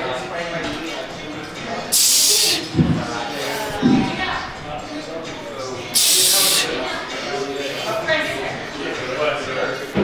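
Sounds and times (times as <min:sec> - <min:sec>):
loud hiss: 0:01.9 - 0:02.6, 0:06.0 - 0:06.7.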